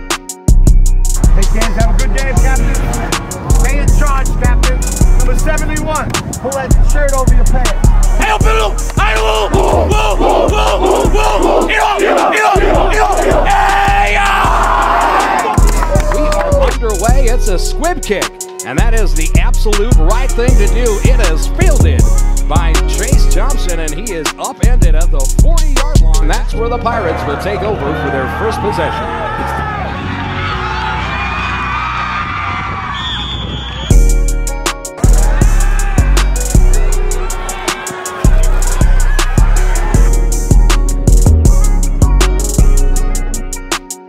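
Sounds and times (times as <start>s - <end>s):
music with steady beat: 0.0s - 26.4s, 33.9s - 44.0s
loud drum beat: 6.7s - 17.4s
team yelling rhythmic shouts: 7.7s - 16.6s, 35.0s - 40.3s
player shouting: 8.1s - 16.6s
high whistle-like tone: 33.0s - 34.1s.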